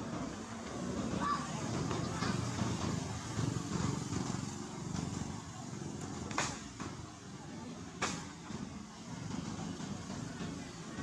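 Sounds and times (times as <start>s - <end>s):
engine pulsing rumble: 0.0s - 11.0s.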